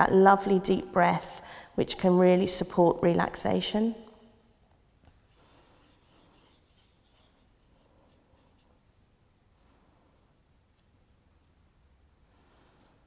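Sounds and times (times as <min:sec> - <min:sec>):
paintbrush brushing on paper: 0:05.2 - 0:09.6.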